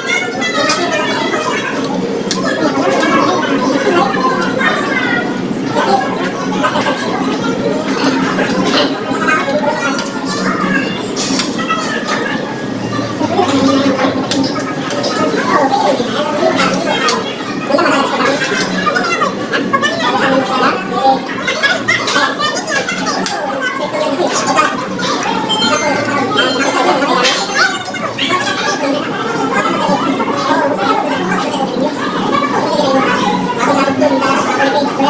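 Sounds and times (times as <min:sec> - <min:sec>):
indistinct chatter of voices: 0:00.0 - 0:35.0.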